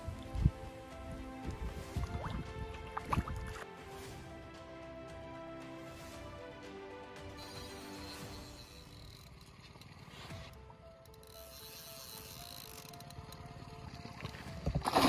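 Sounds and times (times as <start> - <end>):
background music with held notes: 0.0 - 9.5, 10.1 - 15.0
fish splashing and thrashing in water: 1.7 - 3.7, 13.1 - 15.0.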